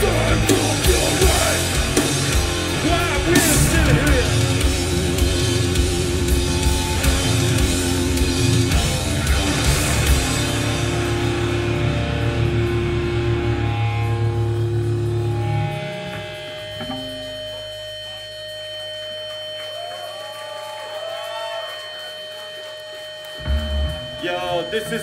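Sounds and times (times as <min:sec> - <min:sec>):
distorted guitar and bass chords: 0:00.0 - 0:20.2, 0:21.8 - 0:25.0
amp feedback tones: 0:00.0 - 0:25.0.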